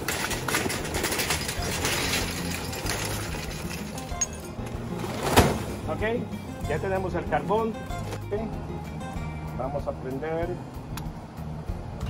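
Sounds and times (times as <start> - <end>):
charcoal clattering into metal container: 0.0 - 6.0
background music: 0.0 - 12.0.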